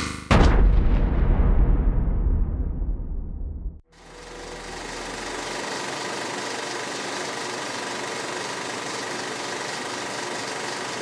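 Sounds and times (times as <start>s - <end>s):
heavy boom rumbling: 0.3s - 3.8s.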